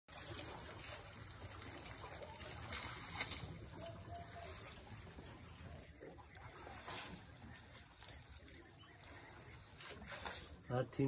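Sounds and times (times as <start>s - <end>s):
water lapping against boat hull: 0.1s - 11.0s.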